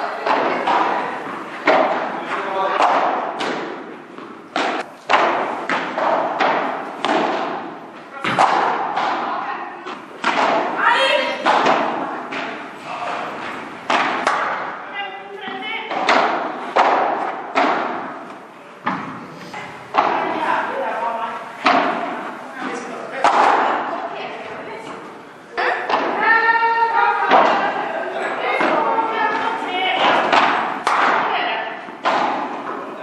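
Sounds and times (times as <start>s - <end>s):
padel ball struck by rackets: 32.0s - 32.8s.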